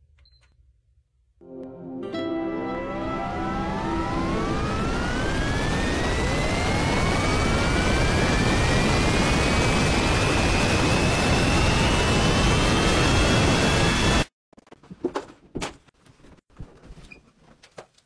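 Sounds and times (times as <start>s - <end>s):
jet engine spooling up: 2.6s - 14.3s.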